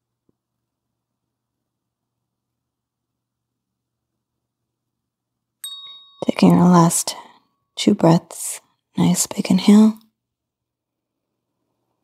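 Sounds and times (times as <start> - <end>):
chime ringing: 5.6 - 7.1.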